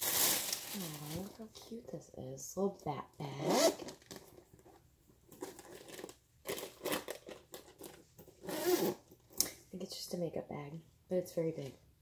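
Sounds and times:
zipper being pulled: 0:03.4 - 0:04.0, 0:08.4 - 0:09.0.

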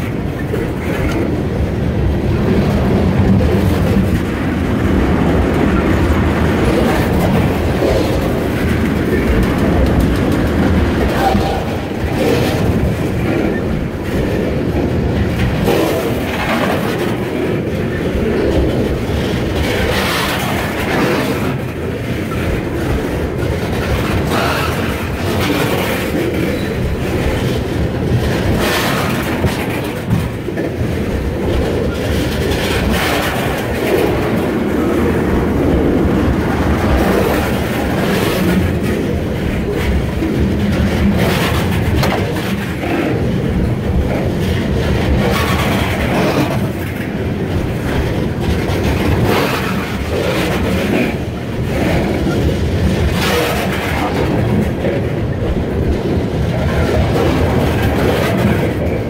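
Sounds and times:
train wheels rumbling on rail: 0:00.0 - 0:59.0
wheels clattering over rail joints: 0:00.0 - 0:59.0.

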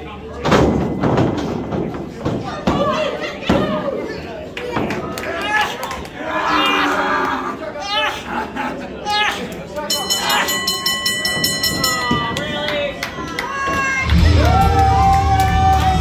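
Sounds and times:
ring bell rung rapidly: 0:09.9 - 0:12.4.

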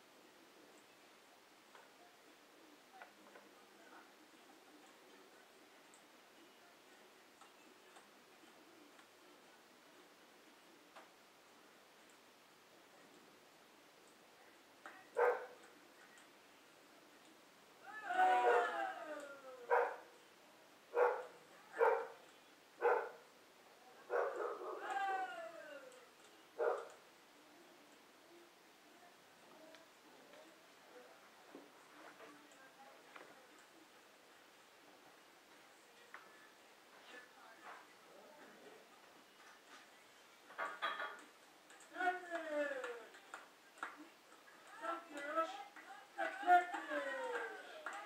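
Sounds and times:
dog barking: 0:15.2 - 0:15.6, 0:19.7 - 0:20.1, 0:21.0 - 0:22.2, 0:22.8 - 0:23.2, 0:24.1 - 0:24.8, 0:26.6 - 0:26.9
child's voice: 0:44.6 - 0:48.0.

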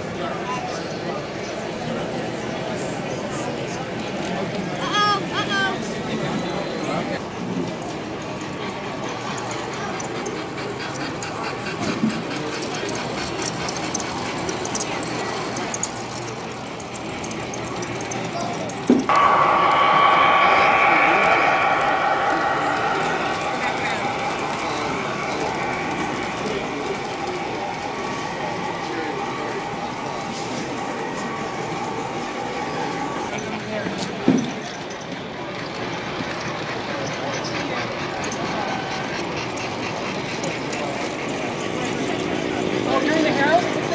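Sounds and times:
crowd chatter: 0:00.0 - 0:43.9
model trains running: 0:00.0 - 0:43.9
model locomotive motor hum: 0:07.9 - 0:18.9, 0:23.0 - 0:33.4.

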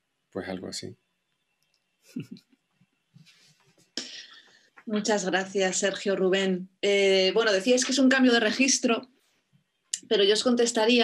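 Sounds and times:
person speaking a word: 0:00.4 - 0:00.9.

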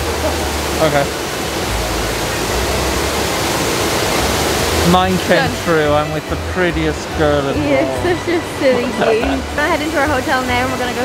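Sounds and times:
fountain water rushing: 0:00.0 - 0:11.0.

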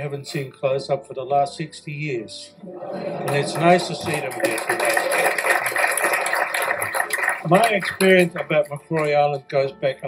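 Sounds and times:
audience applauding: 0:03.0 - 0:09.2.

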